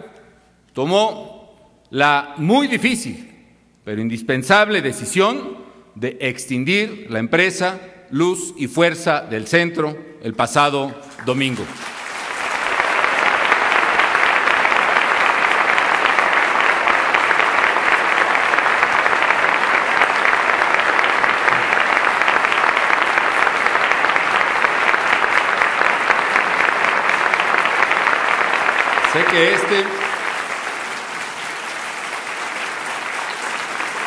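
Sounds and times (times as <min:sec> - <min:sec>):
audience applause: 0:11.2 - 0:34.0.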